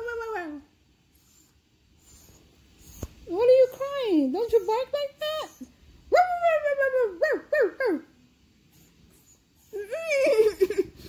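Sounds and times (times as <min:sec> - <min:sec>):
small dog whining: 0:01.1 - 0:05.8, 0:08.7 - 0:10.4.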